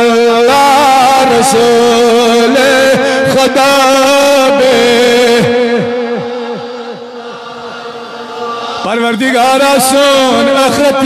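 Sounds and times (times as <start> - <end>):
man chanting with echo: 0.0 - 11.0.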